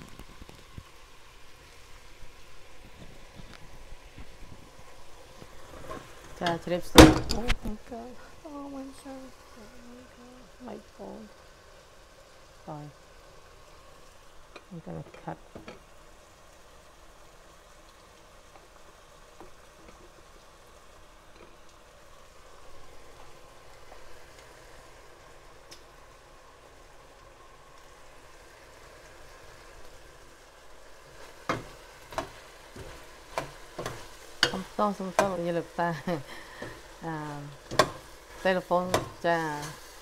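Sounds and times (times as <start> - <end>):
food sizzling in a pot: 0.0 - 40.0.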